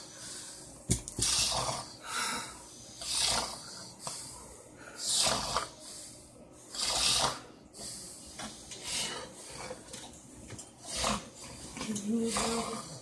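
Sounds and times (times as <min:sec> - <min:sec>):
man breathing heavily: 0:00.0 - 0:09.8.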